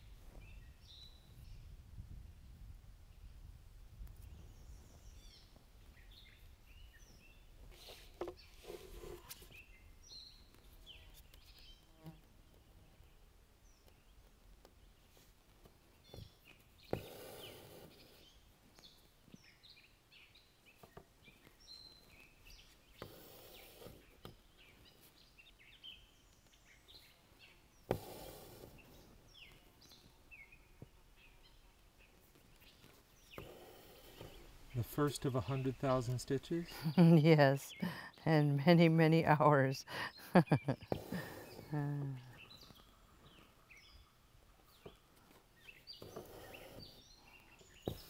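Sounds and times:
small birds chirping: 0.0 - 1.8, 2.5 - 48.0
soft rustle: 7.4 - 13.1, 13.8 - 19.8, 20.6 - 36.8, 44.4 - 48.0.

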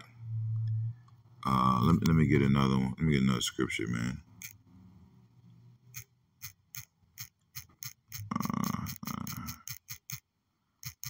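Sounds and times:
low vocal murmur: 8.2 - 9.7.

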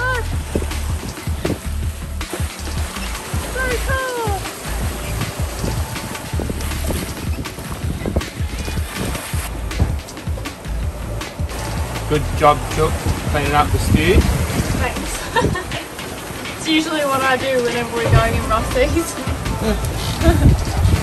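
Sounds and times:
choppy sea: 0.0 - 21.0
music playing: 0.0 - 21.0
wind buffeting microphone: 0.0 - 21.0.

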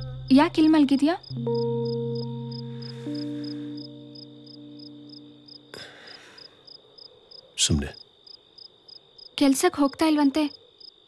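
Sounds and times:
held music notes: 0.0 - 6.0
crickets chirping: 0.0 - 11.0.

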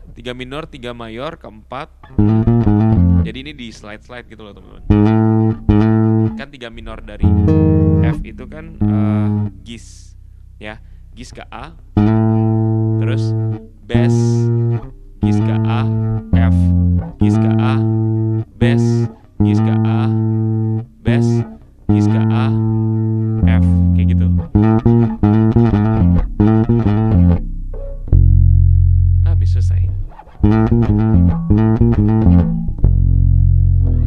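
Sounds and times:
electric bass plucked notes: 0.0 - 34.0.

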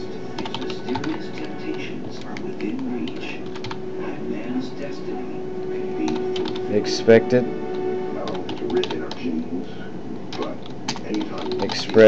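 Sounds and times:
music: 0.0 - 9.8
keyboard typing: 0.3 - 3.8, 6.0 - 6.7, 8.2 - 9.3, 10.3 - 12.0.

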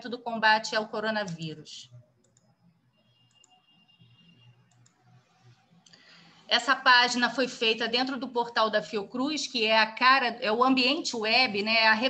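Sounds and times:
soft clicks: 1.2 - 2.6, 3.2 - 3.6, 4.7 - 6.0.

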